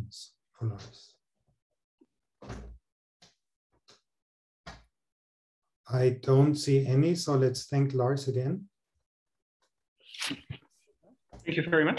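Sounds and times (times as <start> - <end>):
person's voice over video call: 0.0 - 1.1, 5.9 - 8.7.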